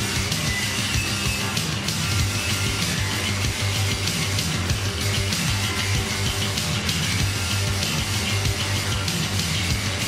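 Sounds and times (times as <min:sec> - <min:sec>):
distorted punk rock music: 0:00.0 - 0:10.0.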